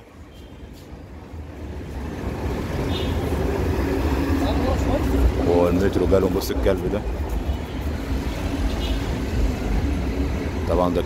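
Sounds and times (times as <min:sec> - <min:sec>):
metro train rumbling: 0:00.0 - 0:11.0.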